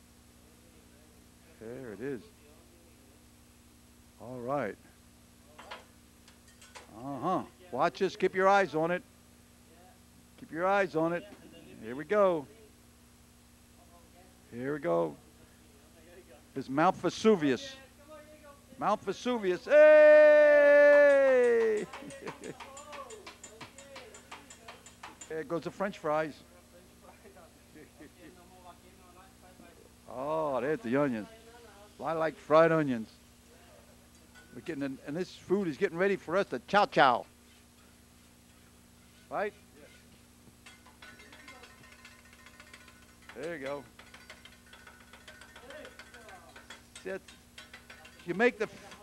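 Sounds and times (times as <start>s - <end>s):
metal spatula clicking on griddle: 21.8s - 25.4s, 40.6s - 49.0s.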